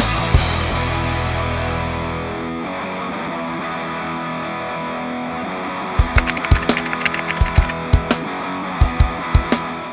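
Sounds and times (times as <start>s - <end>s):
keyboard typing clicks: 6.2s - 7.8s.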